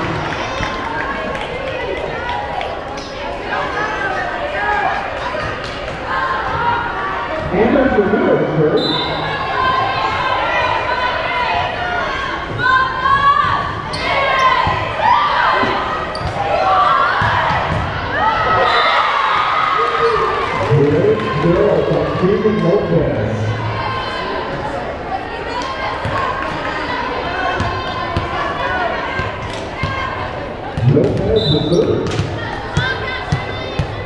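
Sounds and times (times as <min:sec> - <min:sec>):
people calling and shouting: 0:00.0 - 0:34.0
court sounds: 0:11.5 - 0:34.0
volleyball hits: 0:30.7 - 0:34.0.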